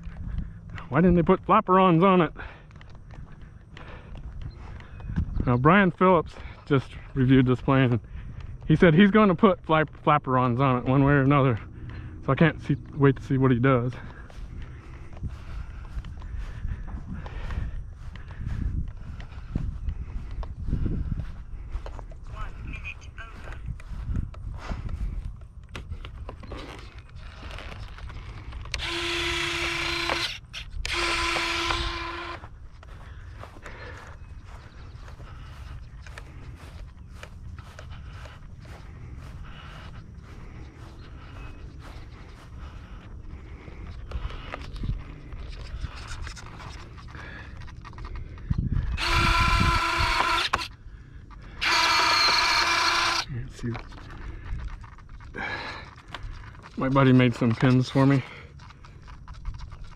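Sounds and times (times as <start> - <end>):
small motor whine of landing gear: 49.0 - 50.7, 51.6 - 53.2.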